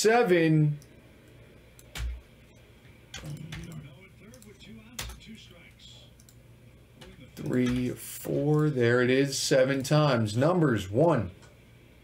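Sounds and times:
keyboard and mouse clicks: 0:03.1 - 0:05.2
man murmuring: 0:03.2 - 0:04.0.

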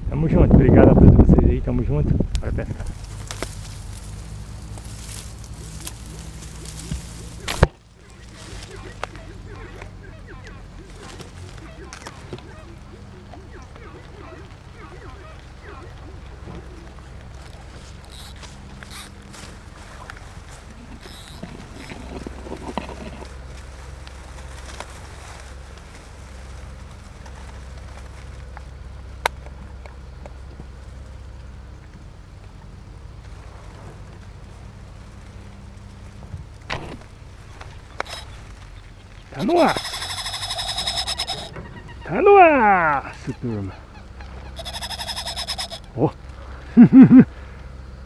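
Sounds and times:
low rumble: 0:00.0 - 0:39.4
reeds and grass rustling: 0:02.1 - 0:46.7.

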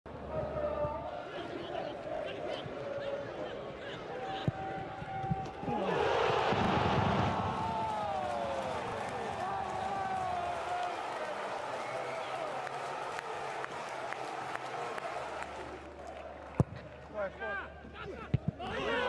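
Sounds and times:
stadium crowd noise: 0:00.1 - 0:19.0
players shouting: 0:01.2 - 0:13.6, 0:17.5 - 0:19.0.

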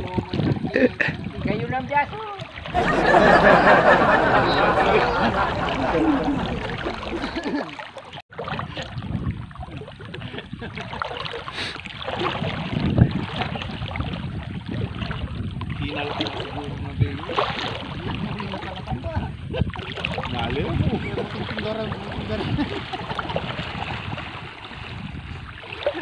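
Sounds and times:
wind on microphone: 0:00.0 - 0:07.6, 0:08.4 - 0:26.0
river water sloshing and splashing: 0:00.0 - 0:26.0.

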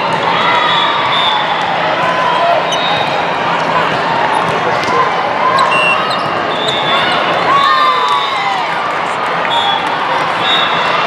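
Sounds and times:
many overlapping voices: 0:00.0 - 0:11.0
sneakers squeaking on court: 0:05.5 - 0:07.2.

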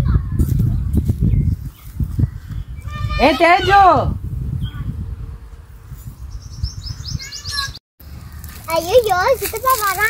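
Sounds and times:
wind rumble on microphone: 0:00.0 - 0:08.7
small bird chirping: 0:06.1 - 0:07.8.

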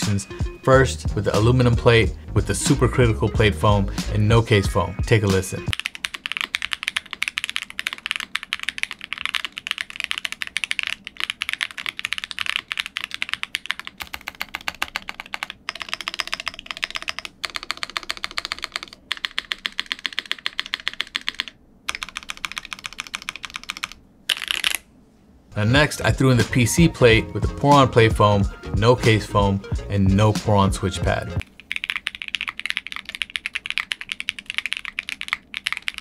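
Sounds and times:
mechanical keyboard typing: 0:05.7 - 0:24.8, 0:31.6 - 0:36.0.

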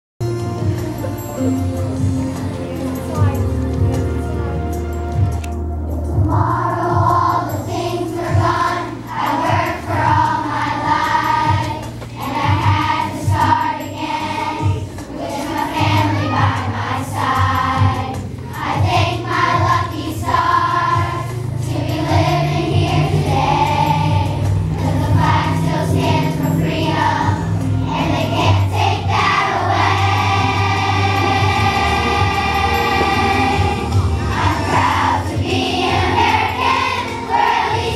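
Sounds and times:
instrumental accompaniment: 0:00.2 - 0:37.9
children's choir singing: 0:06.2 - 0:37.9.

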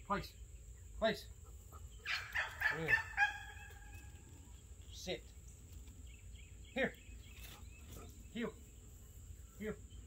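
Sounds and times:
pitched bird calls: 0:00.3 - 0:10.0.

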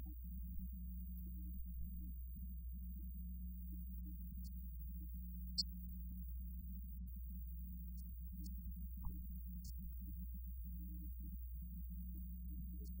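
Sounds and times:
steady low hum: 0:00.0 - 0:13.0
faint tick: 0:07.9 - 0:09.8.

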